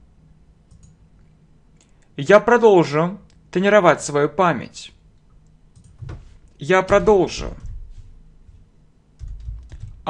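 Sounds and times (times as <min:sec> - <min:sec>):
computer keyboard keystrokes: 0:00.7 - 0:01.0, 0:05.7 - 0:06.2, 0:09.2 - 0:10.0.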